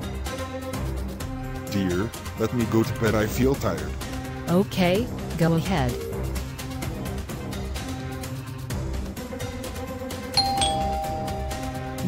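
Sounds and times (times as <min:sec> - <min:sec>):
background music: 0:00.0 - 0:12.0
two-tone doorbell chime: 0:10.4 - 0:12.0.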